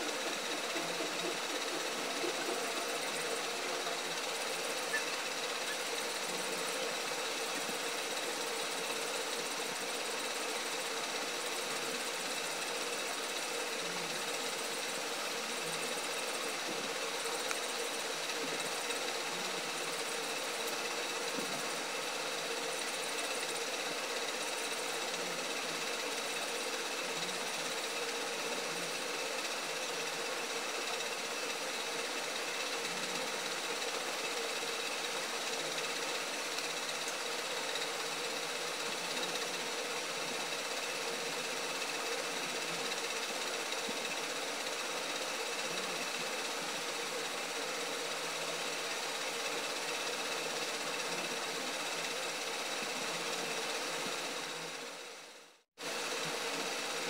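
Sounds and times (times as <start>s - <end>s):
faint constant tones: 0.0s - 57.0s
hiss: 0.0s - 57.0s
steady mechanical whir: 0.0s - 57.0s.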